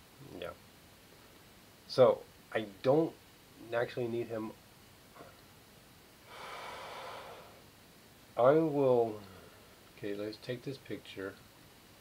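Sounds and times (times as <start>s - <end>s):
man breathing out: 6.3s - 7.6s.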